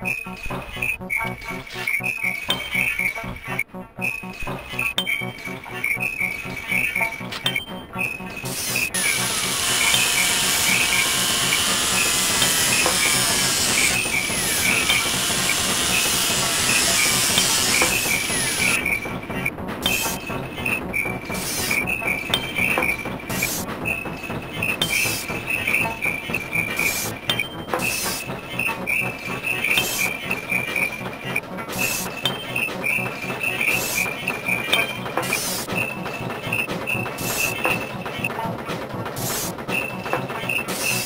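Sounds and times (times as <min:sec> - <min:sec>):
steady high tone: 0:00.0 - 0:16.1
sweeping gliding tones: 0:00.0 - 0:38.3
clattering rhythm: 0:00.0 - 0:41.0.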